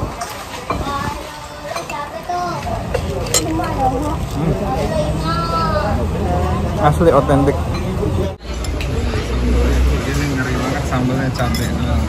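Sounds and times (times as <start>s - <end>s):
low rumble of eating area: 0.0s - 12.0s.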